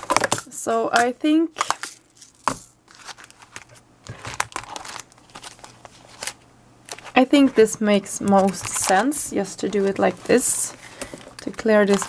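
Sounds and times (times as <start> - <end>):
plastic packages crinkling: 0.0 - 12.0.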